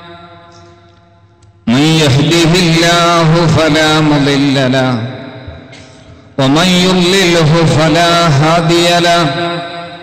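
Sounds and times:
man chanting recitation: 1.6s - 5.2s, 6.4s - 10.0s.

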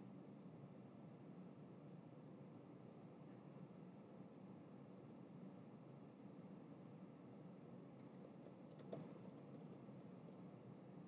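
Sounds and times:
low room hum: 0.0s - 11.0s
faint keyboard clicks: 8.0s - 10.5s.

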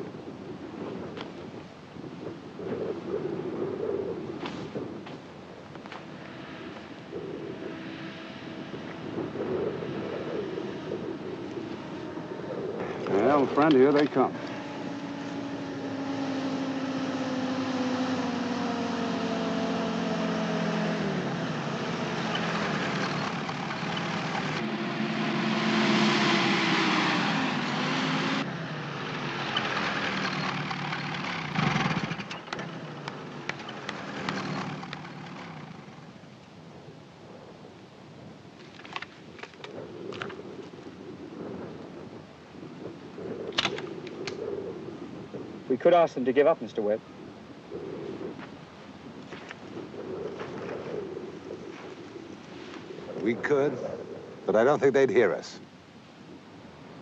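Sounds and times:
off-road vehicle engines: 0.0s - 57.0s
quiet engine rumble: 3.5s - 37.6s.

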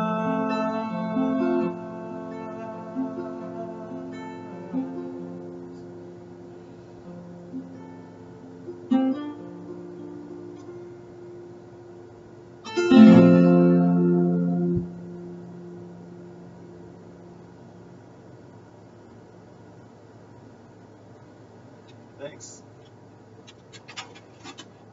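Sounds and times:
acoustic guitar notes and chords: 0.0s - 18.0s.

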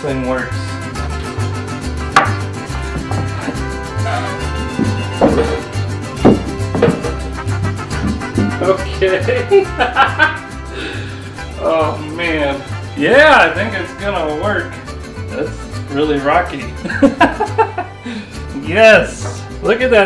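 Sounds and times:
background music with bass line: 0.0s - 20.0s.

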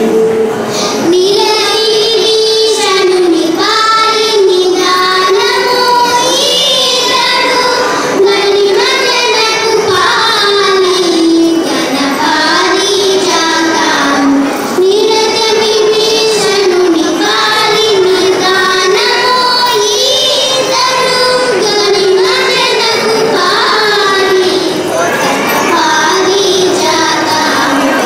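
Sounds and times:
girls singing together: 0.0s - 28.0s.

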